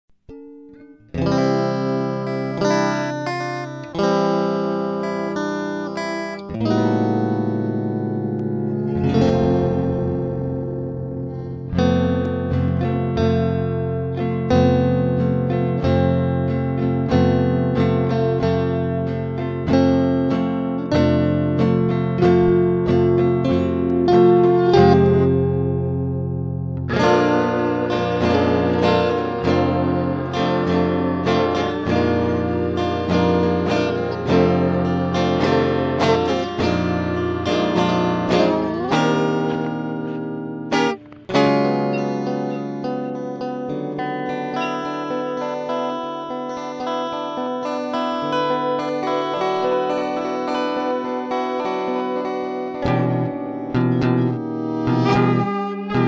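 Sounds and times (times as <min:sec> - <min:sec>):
plucked guitar chords: 0:00.1 - 0:56.0.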